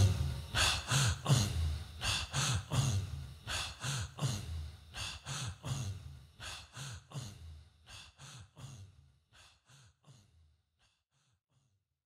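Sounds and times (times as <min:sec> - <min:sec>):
breathy vocal chanting: 0:00.0 - 0:11.6.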